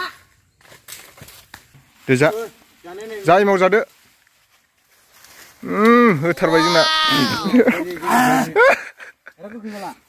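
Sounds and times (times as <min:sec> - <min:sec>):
person groaning loudly: 0:05.6 - 0:08.6.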